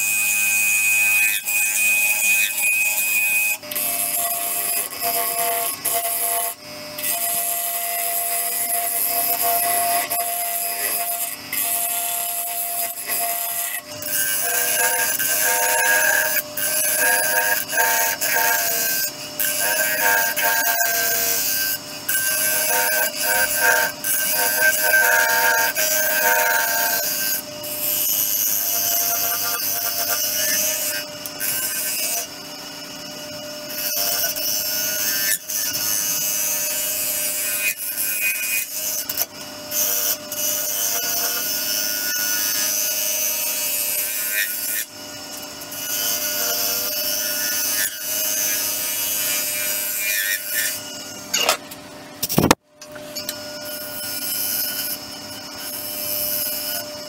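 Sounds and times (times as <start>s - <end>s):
lathe gouge cutting wood: 0.6s - 32.3s.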